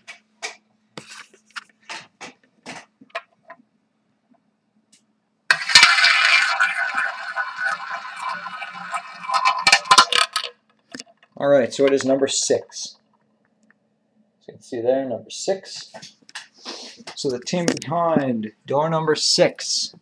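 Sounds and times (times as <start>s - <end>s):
roulette ball rattling round wheel: 5.5s - 12.1s.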